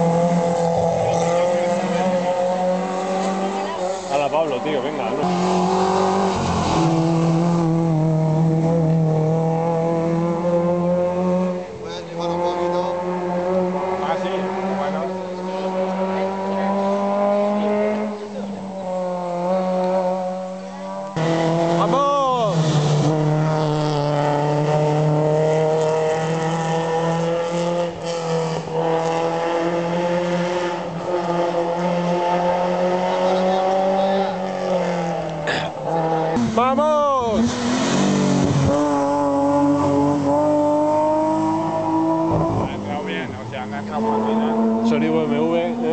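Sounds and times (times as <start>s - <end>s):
rally car engine at high revs: 0.0s - 45.9s.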